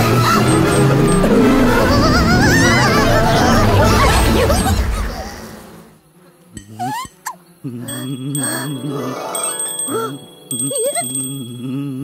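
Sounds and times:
rising buzzy squeak: 0.0 - 5.3
sparkling shimmer: 7.9 - 11.7.

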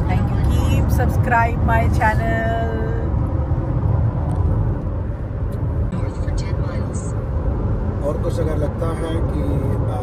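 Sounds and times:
car cabin road and engine rumble: 0.0 - 10.0.

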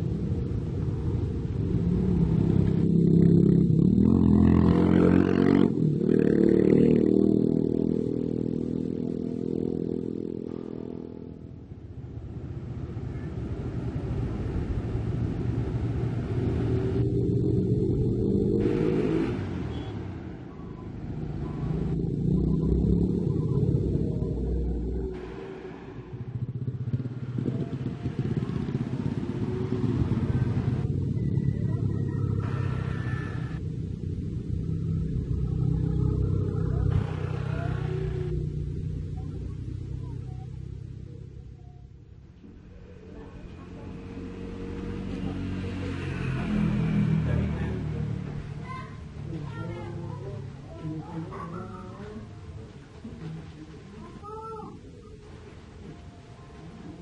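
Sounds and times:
vehicle engines passing: 0.0 - 57.0.

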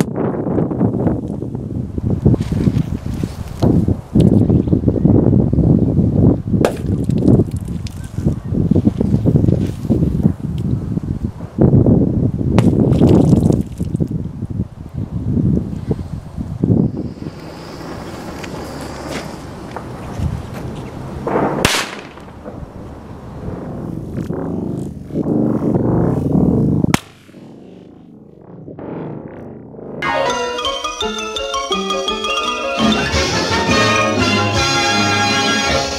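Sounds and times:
wind buffeting microphone: 0.0 - 30.0
rush of noise: 15.6 - 30.8
firecracker bang: 21.1 - 24.2, 25.3 - 28.0.

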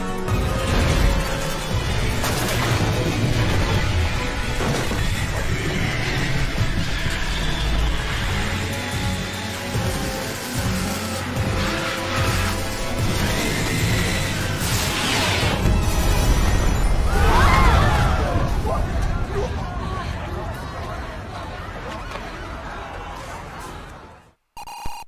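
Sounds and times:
film soundtrack music: 0.0 - 19.4.

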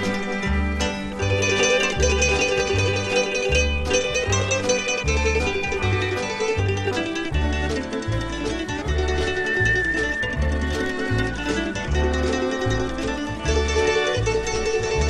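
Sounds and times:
guitar: 0.0 - 15.0
plucked mandolin lead: 0.0 - 15.0
steady bass notes: 0.0 - 15.0.

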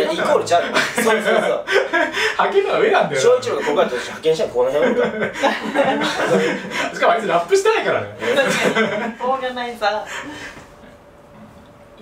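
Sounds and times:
men laughing: 0.0 - 7.4, 8.2 - 9.4
men talking: 0.0 - 9.2.

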